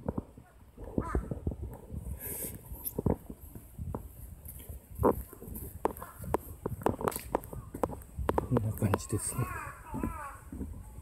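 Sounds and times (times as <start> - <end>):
crow cawing: 9.2 - 10.4.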